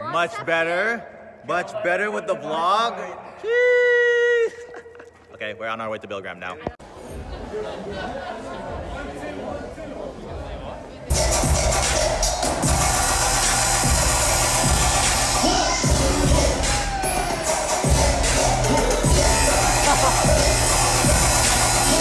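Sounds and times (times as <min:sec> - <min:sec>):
crowd noise: 0:06.1 - 0:22.0
dubstep with heavy bass: 0:11.1 - 0:22.0.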